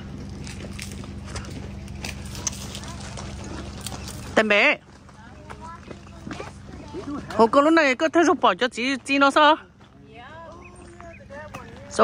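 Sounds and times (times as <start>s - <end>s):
footsteps on gravel: 0.0s - 12.0s
steady low hum: 0.0s - 12.0s.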